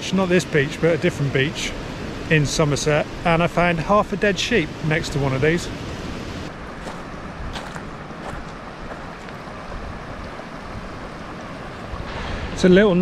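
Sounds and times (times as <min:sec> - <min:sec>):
distant surf: 0:00.0 - 0:13.0
steady wind: 0:00.0 - 0:13.0.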